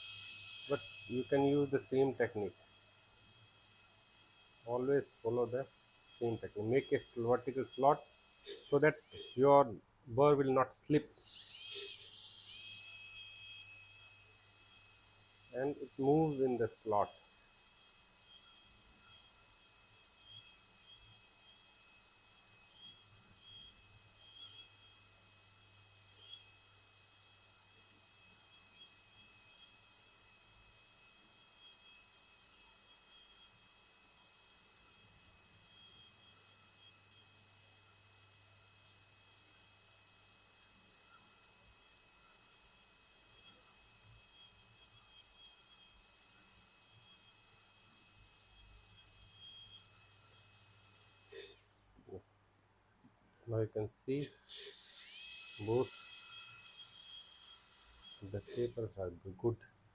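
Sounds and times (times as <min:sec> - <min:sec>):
dental drill whine: 0:00.0 - 0:09.7, 0:10.9 - 0:51.8, 0:54.2 - 0:59.1.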